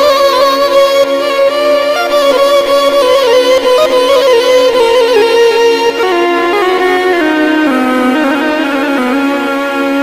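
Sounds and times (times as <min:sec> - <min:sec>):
synthesized keyboard melody: 0:00.0 - 0:10.0.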